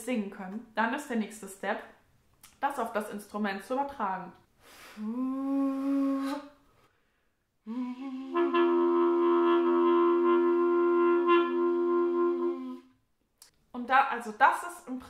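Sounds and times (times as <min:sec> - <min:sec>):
person singing into clarinet: 0:05.0 - 0:06.6, 0:07.7 - 0:12.9
clarinet note: 0:07.7 - 0:12.9.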